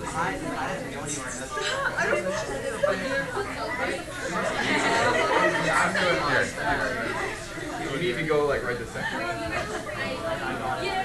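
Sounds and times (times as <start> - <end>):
students chattering: 0.0 - 11.0.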